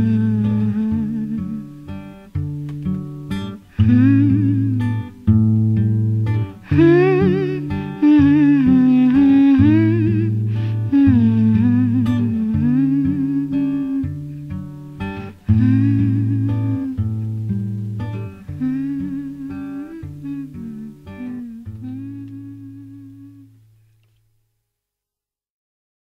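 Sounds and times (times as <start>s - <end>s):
woman singing wordless vocal: 0.0s - 2.0s, 3.6s - 5.2s, 6.6s - 14.3s, 15.1s - 17.2s, 18.2s - 23.6s
acoustic guitar: 0.0s - 24.4s.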